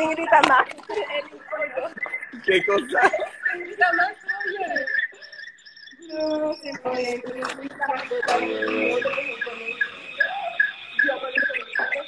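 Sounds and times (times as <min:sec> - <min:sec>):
person talking: 0:06.0 - 0:12.0.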